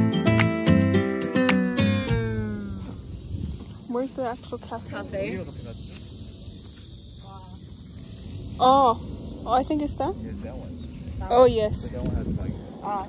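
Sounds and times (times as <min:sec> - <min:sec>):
guitar music: 0:00.0 - 0:02.9.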